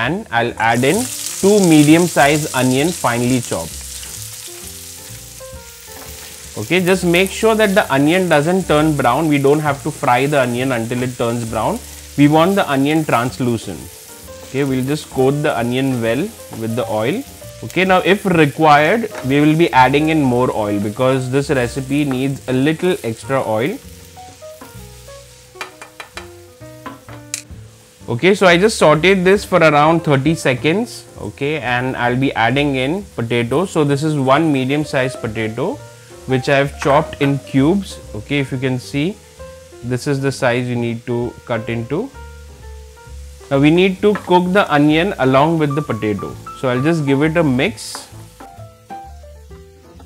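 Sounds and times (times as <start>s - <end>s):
onions sizzling in a frying pan: 0.0s - 50.0s
soft background music: 0.0s - 50.0s.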